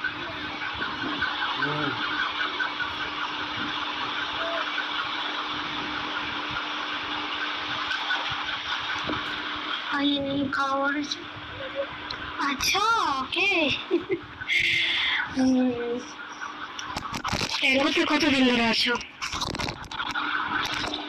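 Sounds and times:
faint voices: 0.0 - 5.8, 7.7 - 19.9
low even hum: 0.0 - 21.0.

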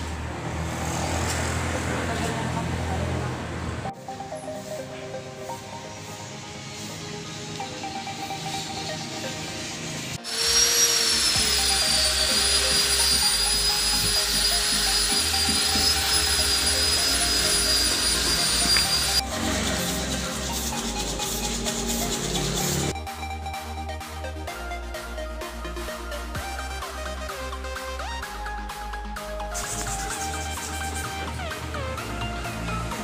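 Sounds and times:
electronic music with beat: 3.9 - 10.3, 11.3 - 33.0
angle grinder grinding metal: 6.8 - 22.9.

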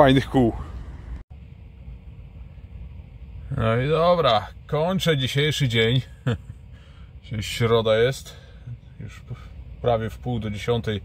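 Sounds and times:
faint steady hum: 0.0 - 11.0
low vehicle rumble: 0.0 - 11.0.

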